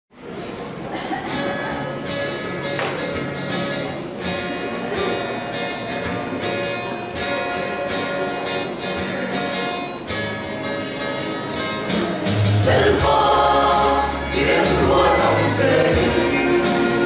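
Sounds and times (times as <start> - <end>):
acoustic guitar strumming: 1.2 - 17.0.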